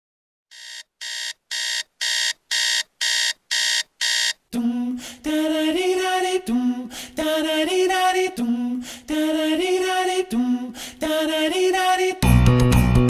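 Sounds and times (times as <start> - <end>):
alarm clock beeping: 0.5 - 4.4
music with singing: 4.6 - 13.0.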